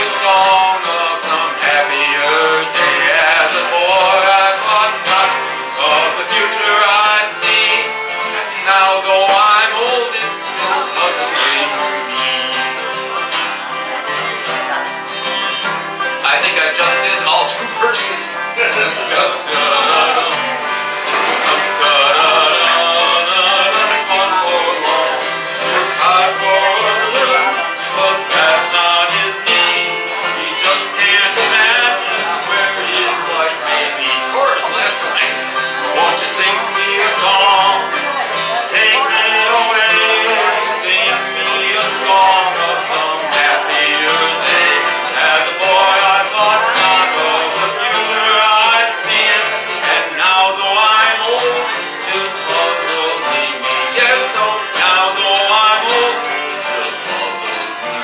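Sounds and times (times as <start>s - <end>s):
acoustic guitars playing country: 0.0s - 58.0s.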